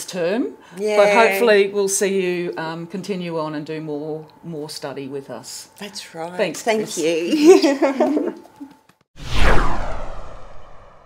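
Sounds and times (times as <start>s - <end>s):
low rumble: 9.2s - 11.0s
whoosh sweeping down in pitch: 9.2s - 11.0s.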